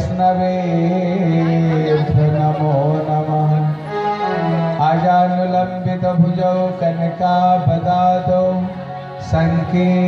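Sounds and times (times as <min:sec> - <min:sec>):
devotional chanting with music: 0:00.0 - 0:10.0.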